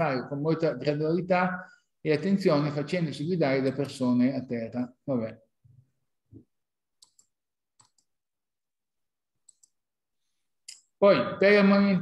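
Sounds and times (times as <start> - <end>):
computer mouse clicks: 7.0 - 8.1, 9.4 - 9.8.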